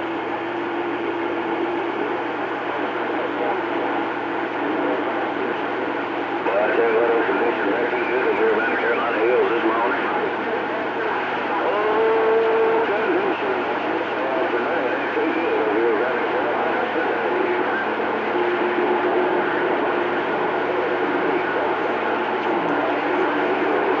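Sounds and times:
radio static hiss: 0.0 - 24.0
steady radio tones: 0.0 - 24.0
unintelligible radio voices: 0.0 - 24.0.

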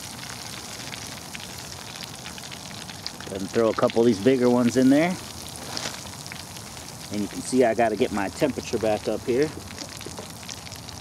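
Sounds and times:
fish deep-frying in oil: 0.0 - 11.0.

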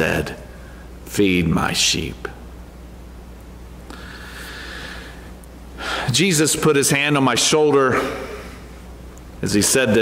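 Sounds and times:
man breathing in: 3.9 - 6.1.

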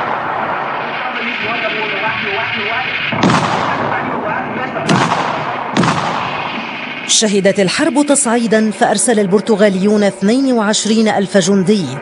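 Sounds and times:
loud gunshots: 0.0 - 7.2
combat background din: 0.6 - 12.0.

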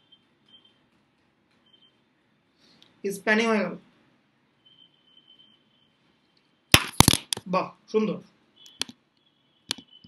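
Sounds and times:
faint high whine: 4.5 - 6.7.

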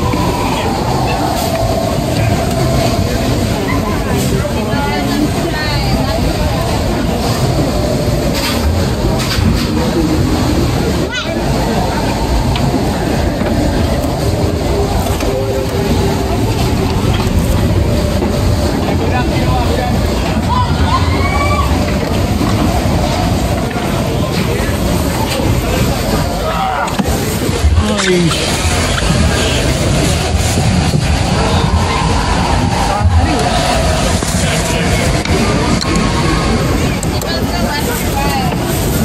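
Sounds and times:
coaster wheels rumbling on track: 0.0 - 39.0.

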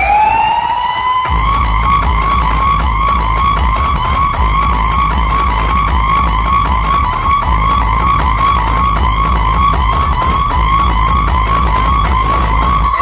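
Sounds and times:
heavy bass beat: 0.0 - 13.0
siren effect wailing: 0.0 - 13.0.

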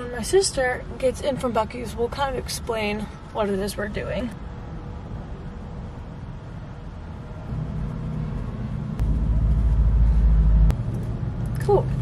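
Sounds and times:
low vehicle rumble: 0.0 - 12.0.

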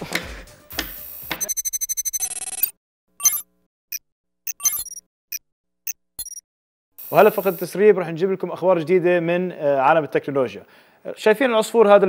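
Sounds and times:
high digital beeps: 1.4 - 6.4
burst of hiss: 7.0 - 7.8.

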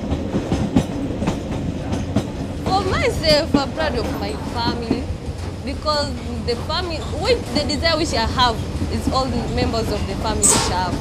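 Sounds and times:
train rumbling on track: 0.0 - 11.0
wheels clacking over rail joints: 0.0 - 11.0.

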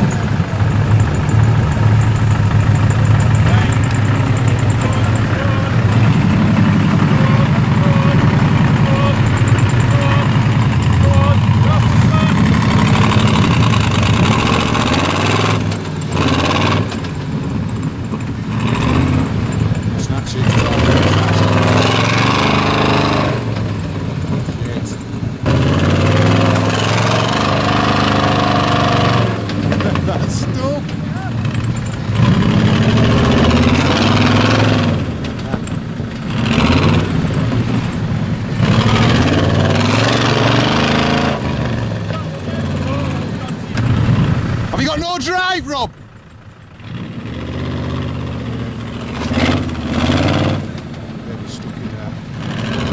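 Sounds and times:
off-road engine revving: 0.0 - 52.9.

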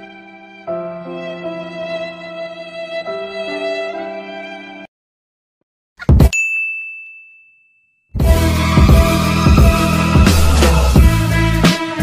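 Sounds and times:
high bell-like ding: 6.3 - 8.1.

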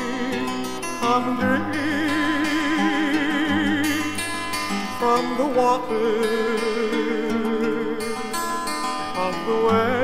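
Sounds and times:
acoustic guitar picking: 0.0 - 10.0
person singing with vibrato: 0.0 - 10.0.

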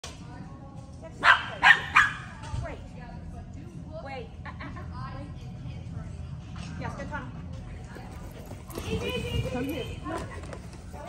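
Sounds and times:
small dog barking: 1.2 - 2.3.

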